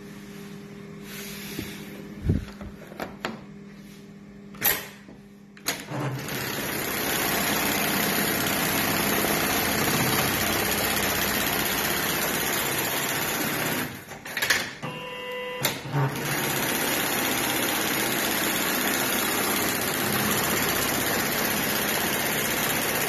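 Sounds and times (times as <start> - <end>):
steady hum: 0.0 - 5.6
sewing machine humming: 5.7 - 14.4, 15.6 - 23.0.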